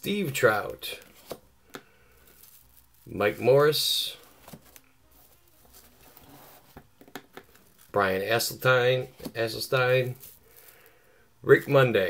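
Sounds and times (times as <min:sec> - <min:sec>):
cardboard cards shuffling: 0:00.5 - 0:08.1, 0:08.9 - 0:10.9.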